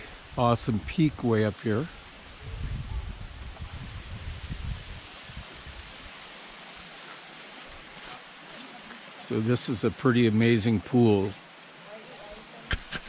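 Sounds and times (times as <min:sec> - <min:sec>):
stream and waterfall flowing: 0:00.0 - 0:13.0
wind rumble on microphone: 0:01.8 - 0:06.2.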